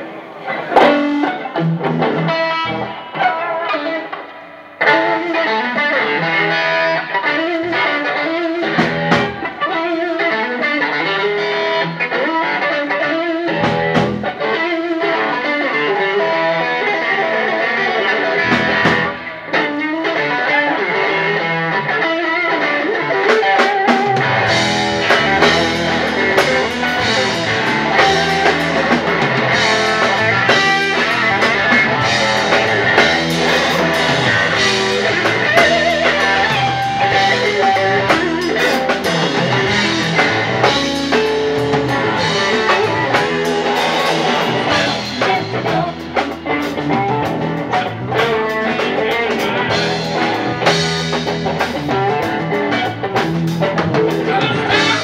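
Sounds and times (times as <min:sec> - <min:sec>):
bass guitar: 0:00.0 - 0:55.0
electric guitar: 0:00.0 - 0:55.0
drum kit: 0:00.6 - 0:15.4, 0:18.3 - 0:20.3, 0:23.1 - 0:55.0.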